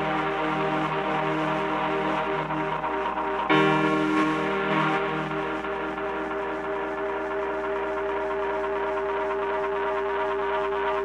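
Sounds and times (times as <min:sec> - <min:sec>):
electronic drone chord: 0:00.0 - 0:11.0.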